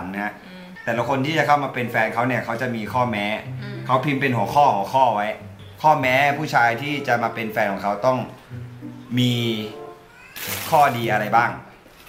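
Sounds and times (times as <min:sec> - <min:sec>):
man speaking: 0:00.0 - 0:11.7
quiet background music: 0:00.0 - 0:12.0
paper wrapping rustling: 0:10.2 - 0:12.0.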